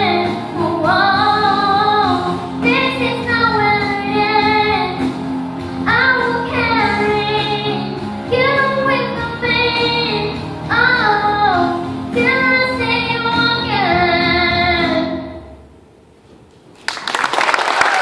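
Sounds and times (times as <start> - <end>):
girl singing through loudspeaker: 0.0 - 5.1, 5.8 - 15.6.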